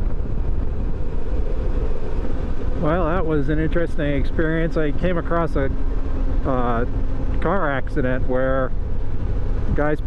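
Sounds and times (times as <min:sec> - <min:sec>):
motorcycle engine and wind rumble: 0:00.0 - 0:10.0.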